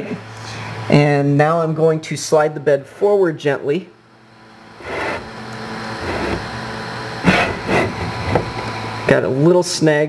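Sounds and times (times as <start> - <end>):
printer bed rolling along rods: 4.8 - 5.3.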